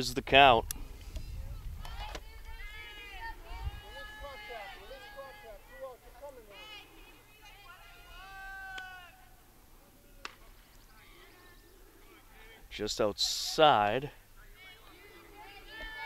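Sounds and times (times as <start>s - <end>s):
distant players shouting: 1.8s - 12.8s, 14.2s - 16.0s.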